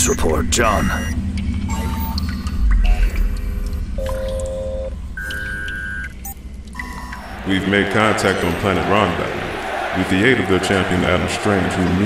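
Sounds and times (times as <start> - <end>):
held electronic tones: 0.0 - 3.3, 3.9 - 8.8
low drone: 0.0 - 5.3
deep rumble: 0.0 - 8.0.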